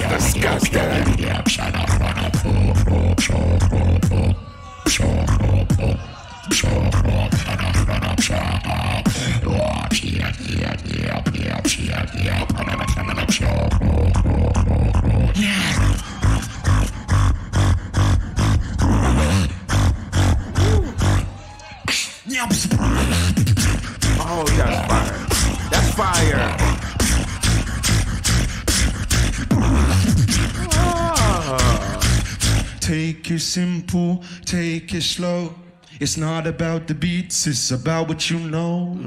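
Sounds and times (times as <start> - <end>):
deep bass: 0.0 - 6.0, 6.6 - 21.4, 22.5 - 33.2
sliding vocal tones: 0.0 - 36.2
beatboxing into a microphone: 0.0 - 39.0.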